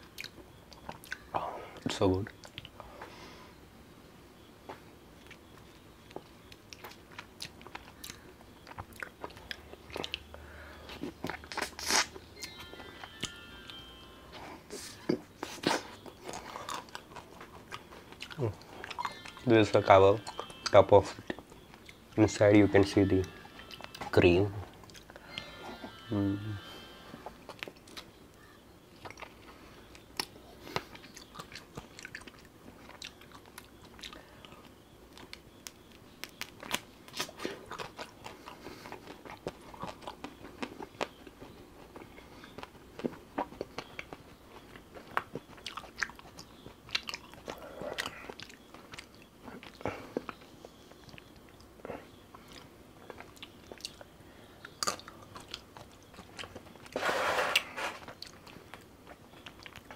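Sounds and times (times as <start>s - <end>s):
man chewing ice cream: 0.0s - 2.9s, 5.1s - 57.0s, 57.6s - 59.9s.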